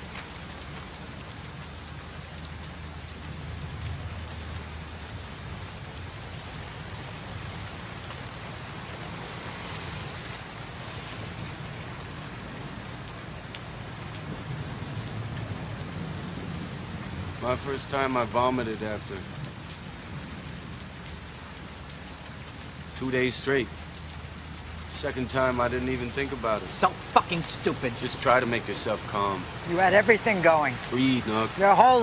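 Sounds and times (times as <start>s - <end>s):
heavy rain falling: 0.0s - 32.0s.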